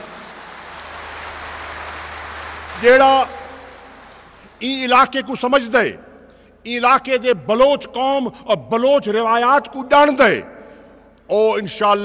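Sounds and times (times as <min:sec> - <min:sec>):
audience applause: 0:00.0 - 0:04.6.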